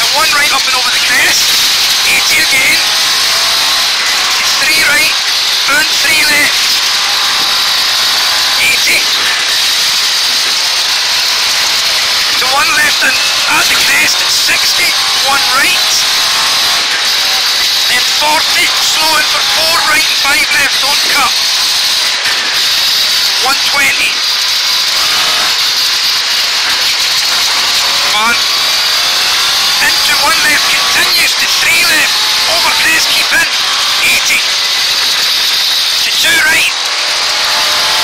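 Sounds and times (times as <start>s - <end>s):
car engine drone under load: 0.0s - 38.0s
road and transmission noise: 0.0s - 38.0s.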